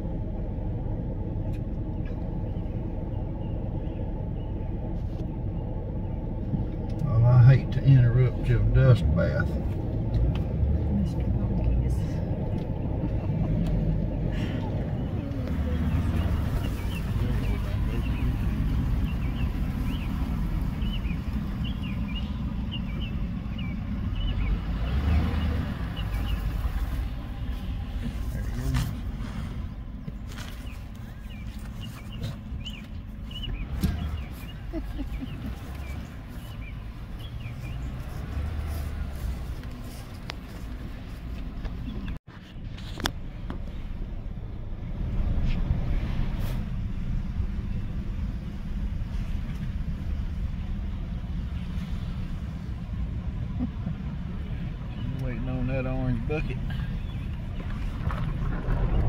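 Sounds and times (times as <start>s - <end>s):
wind rumble on microphone: 56.8s - 59.0s.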